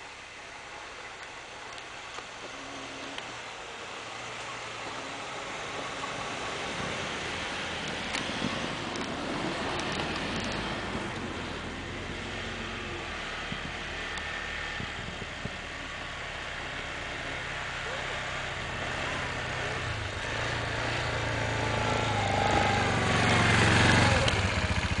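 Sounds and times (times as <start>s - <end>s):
atv engine running: 0.0s - 25.0s
quad ploughing through snow: 0.0s - 25.0s.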